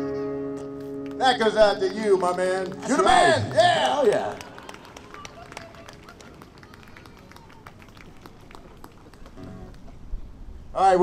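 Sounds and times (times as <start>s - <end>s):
faint background murmur: 1.8s - 10.7s.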